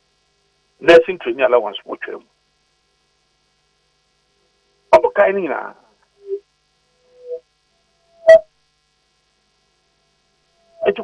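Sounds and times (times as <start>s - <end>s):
faint electrical hum: 0.0s - 11.0s
man's voice on telephone line: 0.8s - 2.3s, 4.9s - 5.9s.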